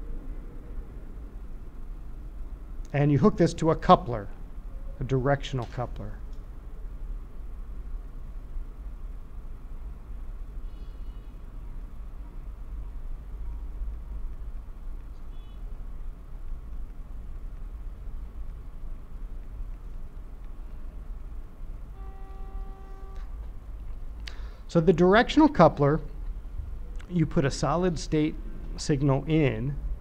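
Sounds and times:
low room hum and rumble: 0.0 - 30.0
short held tone: 22.0 - 23.4.

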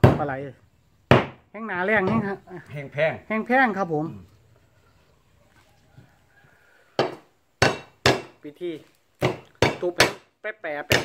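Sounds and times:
kitchen knife chopping on wooden block: 7.0 - 8.4.

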